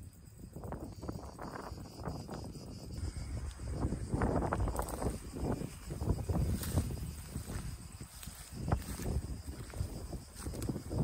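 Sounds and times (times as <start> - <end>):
wind rumbling on microphone: 0.0 - 11.0
footsteps rustling through dry grass: 3.2 - 11.0.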